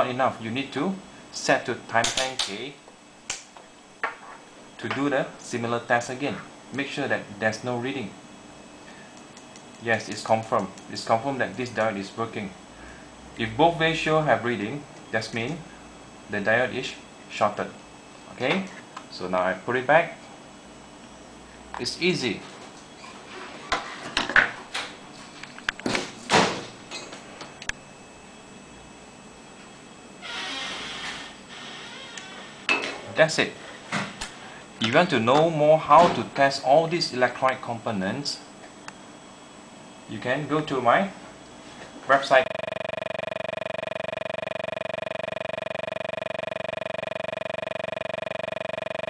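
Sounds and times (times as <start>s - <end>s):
pulsing electronic buzz: 42.4s - 49.0s.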